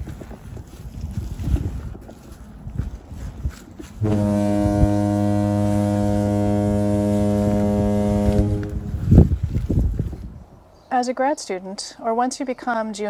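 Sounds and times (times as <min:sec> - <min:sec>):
footsteps on soft dirt: 0:00.0 - 0:05.2, 0:08.0 - 0:10.4
low horn-like drone: 0:04.0 - 0:09.2.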